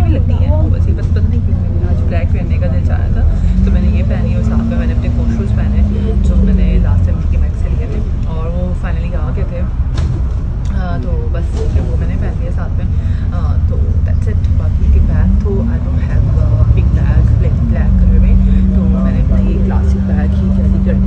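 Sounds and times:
bus engine: 0.0 - 21.0
road rumble: 0.0 - 21.0.

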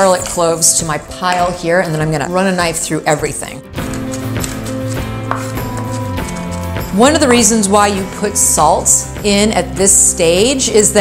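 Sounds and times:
background music: 0.0 - 11.0
knife chopping on wooden board: 4.0 - 6.4.

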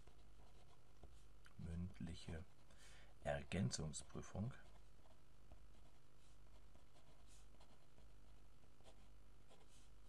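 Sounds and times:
felt-tip pen scratching paper: 4.6 - 9.9.

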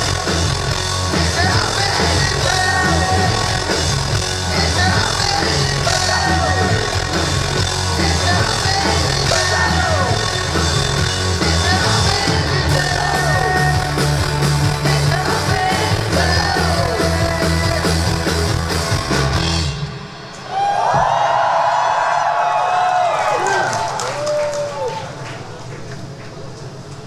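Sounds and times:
steady low bass line: 0.0 - 20.3
live rock band playing: 0.0 - 20.4.

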